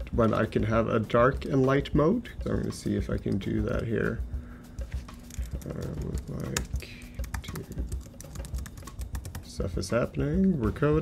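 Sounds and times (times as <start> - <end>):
computer keyboard typing: 5.2 - 9.6.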